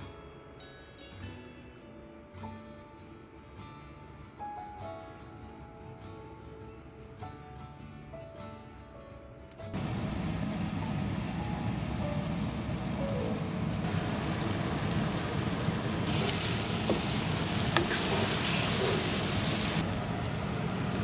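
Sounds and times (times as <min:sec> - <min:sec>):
food sizzling in a pan: 0:09.8 - 0:21.0.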